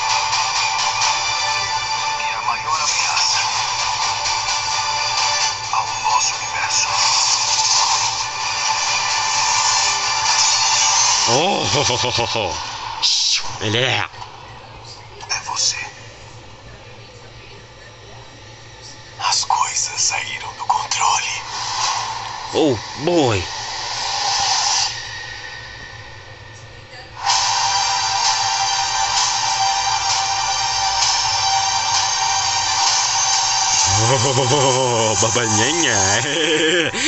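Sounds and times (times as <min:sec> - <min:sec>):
faint music: 0:00.0 - 0:37.0.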